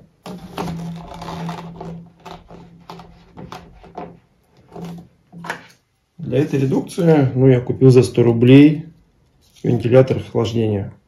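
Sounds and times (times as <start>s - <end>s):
plastic pipe creaking: 0.0s - 6.9s
plastic scraping: 0.0s - 7.0s.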